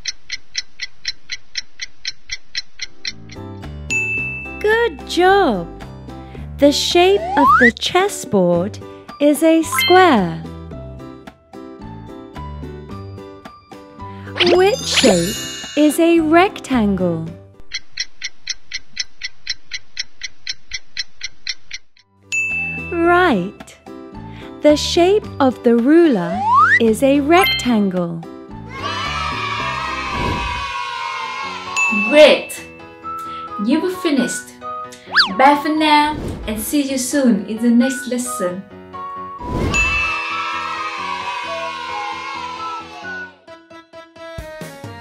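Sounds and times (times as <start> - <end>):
children's music: 6.6 - 10.6, 14.1 - 17.4, 22.8 - 36.0, 36.7 - 38.6, 40.0 - 45.0
cartoon clock ticking: 7.2 - 7.7, 9.6 - 10.2, 17.7 - 21.8, 26.3 - 27.8, 35.0 - 35.4.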